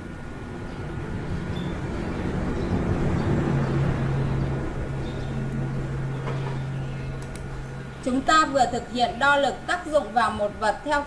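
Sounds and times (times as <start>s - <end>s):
low rumbling noise: 0.0s - 11.0s
steady low hum: 0.0s - 11.0s.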